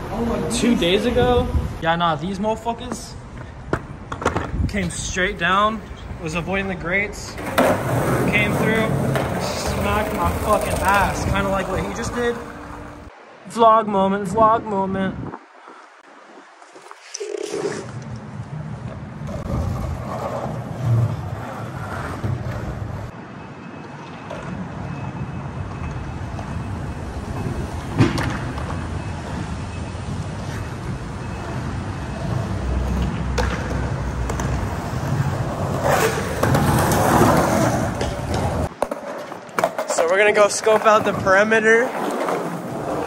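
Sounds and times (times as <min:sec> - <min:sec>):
skateboard wheels rolling on concrete: 0:00.0 - 0:13.6, 0:15.3 - 0:43.0
skateboard clacks: 0:07.4 - 0:12.8, 0:32.8 - 0:43.0.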